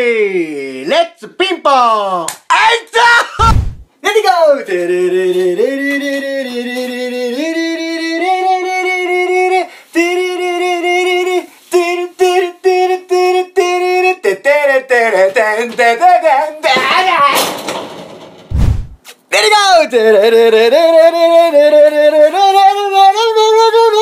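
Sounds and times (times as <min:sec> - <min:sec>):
low thud: 0:03.4 - 0:03.9, 0:18.1 - 0:19.0
person singing: 0:04.7 - 0:17.4, 0:20.0 - 0:24.0.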